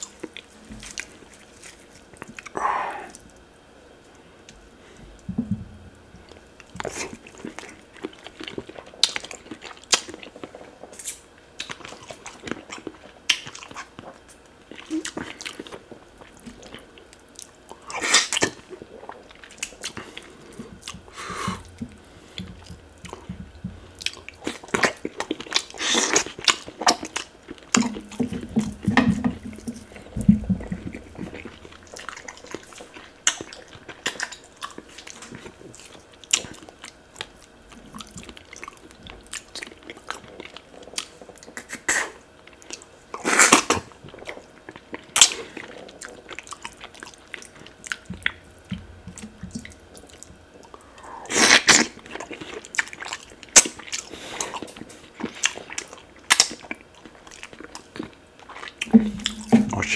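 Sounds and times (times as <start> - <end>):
man chewing and lip smacking: 0.0 - 59.9
sucking sounds: 2.5 - 3.2.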